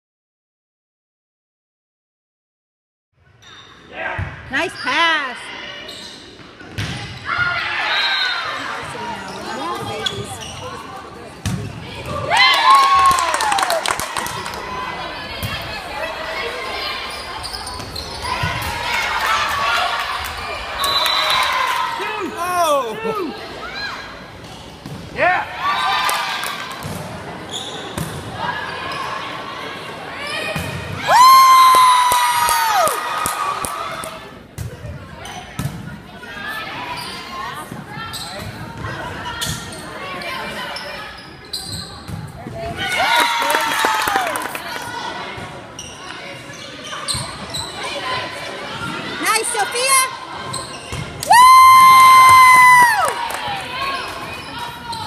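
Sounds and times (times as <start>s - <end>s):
voices and shouts: 12.0s - 24.1s, 47.9s - 50.5s
long held shout: 22.0s - 23.3s, 51.3s - 53.2s.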